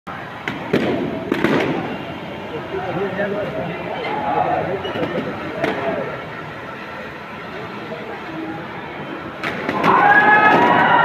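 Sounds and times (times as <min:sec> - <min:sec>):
steady background din: 0:00.1 - 0:11.0
sharp cracks: 0:00.4 - 0:02.0, 0:09.4 - 0:11.0.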